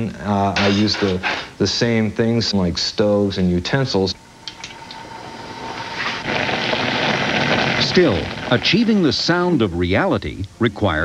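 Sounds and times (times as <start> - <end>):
pot bubbling and sizzling: 3.5 - 10.9.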